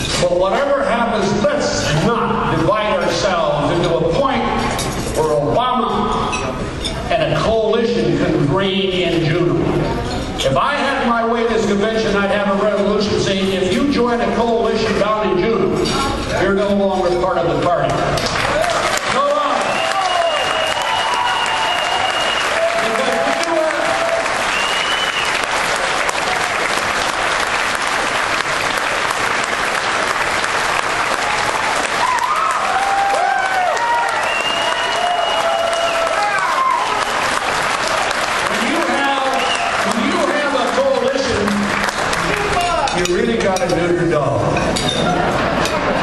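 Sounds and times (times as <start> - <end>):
audience applauding: 18.2 - 42.9.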